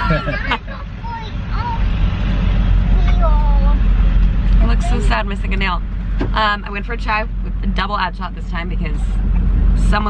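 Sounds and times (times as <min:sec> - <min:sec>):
car cabin rumble: 0:00.0 - 0:10.0.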